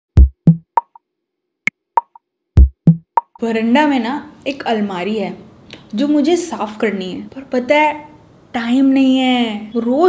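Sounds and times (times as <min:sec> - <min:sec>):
deep electronic thuds: 0:00.2 - 0:01.0, 0:02.0 - 0:03.4.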